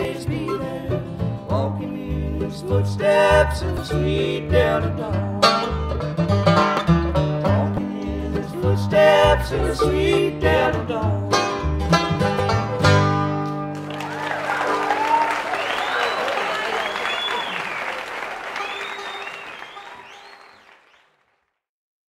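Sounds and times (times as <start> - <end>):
audience applauding and cheering: 13.7 - 21.5.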